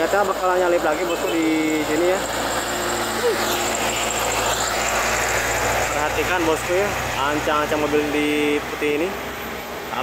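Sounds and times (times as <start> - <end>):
diesel truck engine passing: 0.0 - 10.0.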